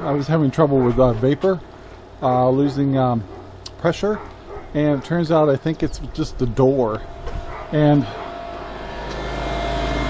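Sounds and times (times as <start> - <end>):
vacuum pump humming: 6.9 - 10.0.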